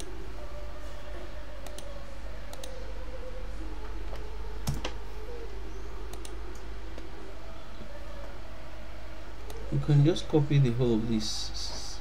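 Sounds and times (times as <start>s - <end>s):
steady low hum: 0.0s - 12.0s
keyboard and mouse clicks: 1.6s - 1.9s, 2.5s - 2.8s, 6.1s - 7.1s.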